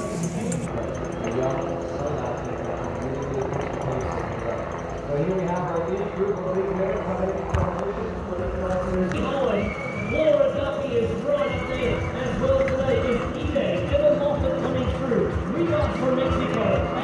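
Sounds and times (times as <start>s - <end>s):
outdoor background noise: 0.0s - 17.0s.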